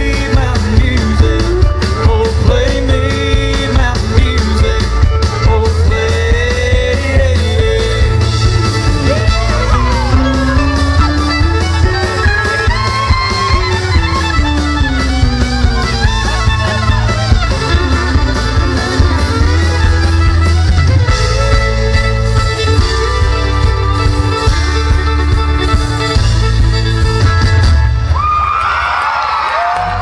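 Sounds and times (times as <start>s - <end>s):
acoustic guitar: 0.0s - 28.1s
fiddle: 0.0s - 28.1s
heavy bass line: 0.0s - 28.1s
drums: 0.0s - 30.0s.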